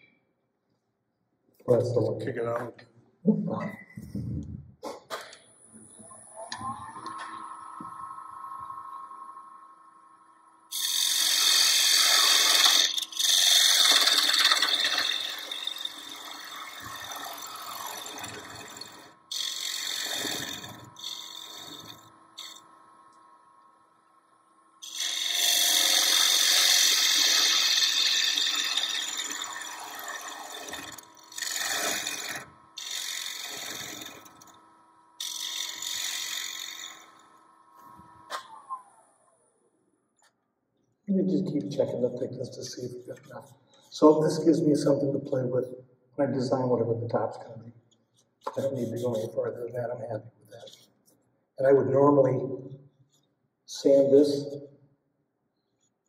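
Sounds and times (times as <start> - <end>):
wood lathe motor whine: 5.8 - 39.4
turning tool cutting wood: 10.7 - 23.3, 24.8 - 39.3, 48.4 - 49.3.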